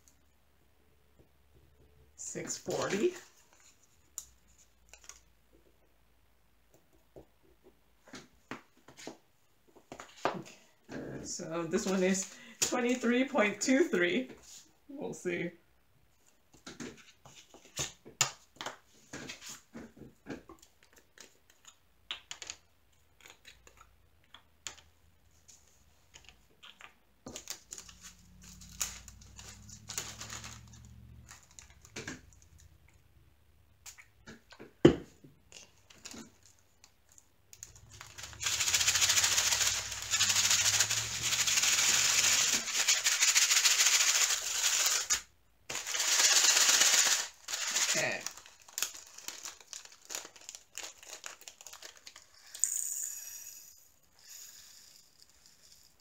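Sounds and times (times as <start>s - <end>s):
tiny plastic beads pouring: 37.6s - 56.0s.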